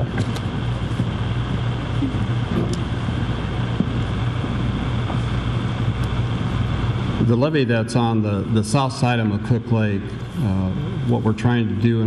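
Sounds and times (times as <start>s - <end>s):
low room hum through microphones: 0.0s - 12.0s.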